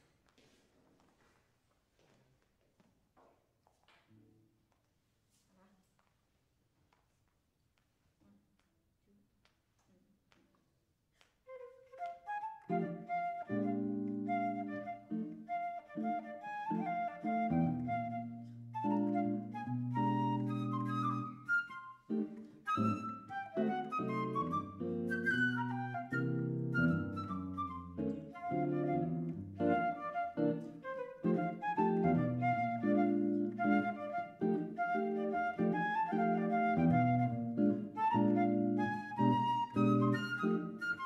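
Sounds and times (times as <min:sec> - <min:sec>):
flute melody: 0:11.5 - 0:41.0
electric guitar chords: 0:22.1 - 0:40.8.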